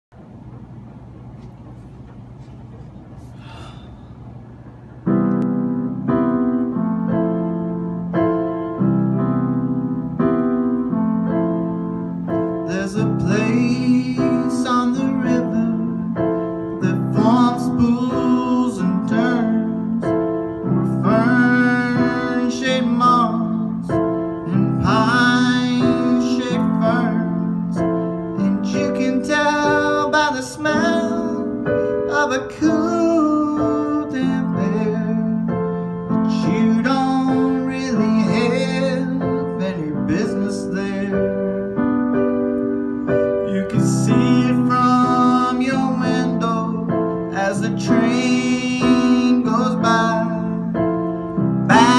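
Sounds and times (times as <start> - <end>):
electric piano chords: 0.1 - 51.9
man singing: 12.5 - 41.9, 43.4 - 51.0, 51.7 - 51.9.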